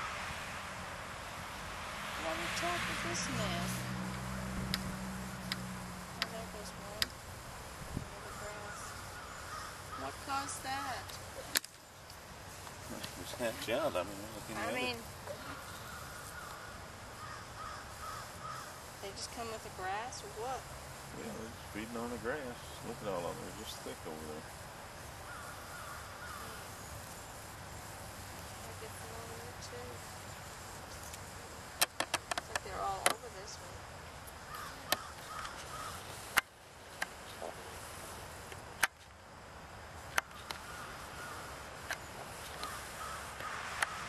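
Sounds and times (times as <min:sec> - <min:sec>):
low background noise: 0:00.0 - 0:44.0
bird calling: 0:08.0 - 0:11.8, 0:12.5 - 0:27.3, 0:34.3 - 0:36.4, 0:40.1 - 0:44.0
bird calling harshly: 0:08.2 - 0:11.5, 0:14.5 - 0:19.0, 0:34.4 - 0:36.3.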